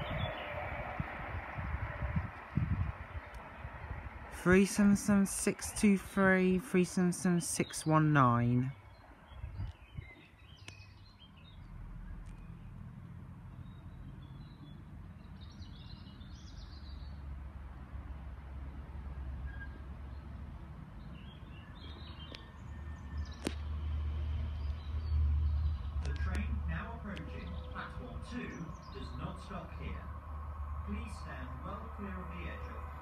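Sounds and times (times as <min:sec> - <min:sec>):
automated platform announcement: 0:04.3 - 0:08.8
bird chirps: 0:07.6 - 0:12.8, 0:13.5 - 0:17.2, 0:24.6 - 0:30.0.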